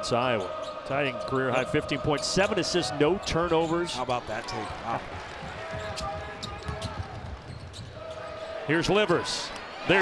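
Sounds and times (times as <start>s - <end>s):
basketball bouncing on court: 5.4s - 8.0s.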